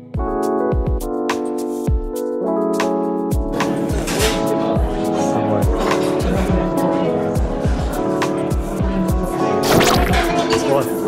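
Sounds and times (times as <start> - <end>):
music with steady beat: 0.1 - 5.0.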